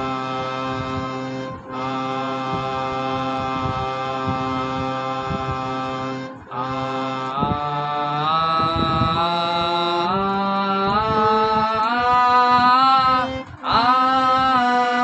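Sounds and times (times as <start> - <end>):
harmonium held notes: 0.0 - 15.0
man singing scale: 0.0 - 15.0.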